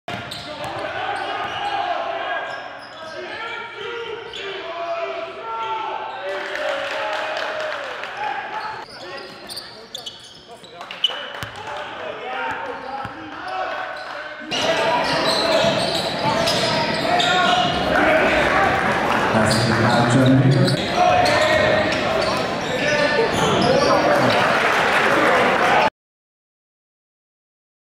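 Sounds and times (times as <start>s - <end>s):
players and spectators calling out: 0.3s - 25.9s.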